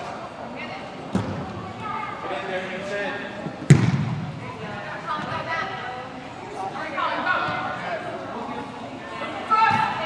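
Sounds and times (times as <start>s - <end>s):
voices of players and spectators: 0.0s - 10.0s
ball kick thump echoing: 1.1s - 1.4s, 3.7s - 4.3s.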